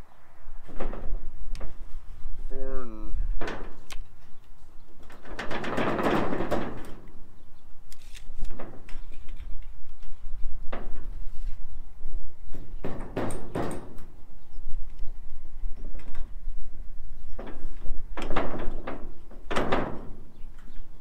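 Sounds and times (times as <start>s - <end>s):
metal roofing clunks: 0.5s - 2.5s, 3.2s - 7.5s, 8.4s - 11.7s, 12.3s - 14.6s, 15.7s - 21.0s.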